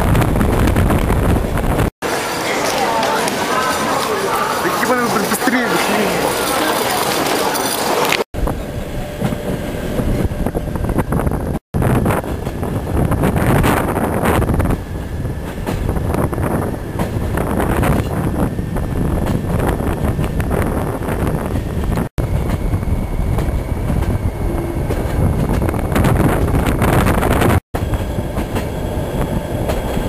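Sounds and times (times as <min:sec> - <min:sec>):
wind noise on microphone: 0:00.0 - 0:01.9, 0:08.4 - 0:30.0
train wheels rumbling on rails: 0:00.0 - 0:30.0.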